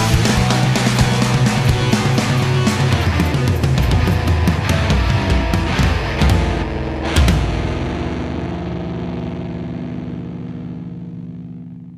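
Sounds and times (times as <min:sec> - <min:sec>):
distorted electric guitar chord: 0:00.0 - 0:11.9.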